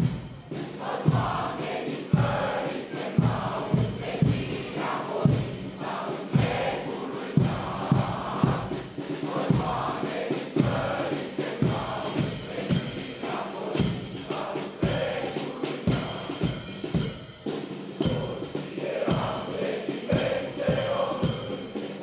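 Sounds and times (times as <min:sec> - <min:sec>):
bass drum and cymbals: 0:00.0 - 0:22.0
marching band playing: 0:00.0 - 0:22.0.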